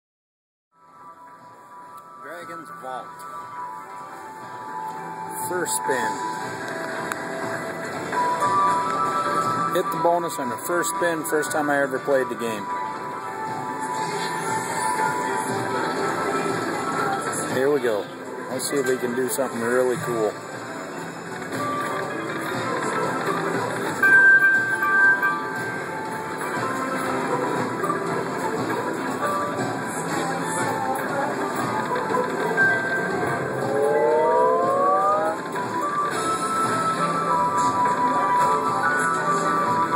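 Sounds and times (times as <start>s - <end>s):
noisy casino background: 0.8s - 39.9s
slot machine bonus music: 2.1s - 13.8s, 18.6s - 39.9s
electronic slot machine tones: 21.6s - 29.1s, 31.6s - 39.9s
chiming win tone: 24.0s - 25.8s, 32.6s - 35.9s
slot machine reels spinning: 31.5s - 37.7s.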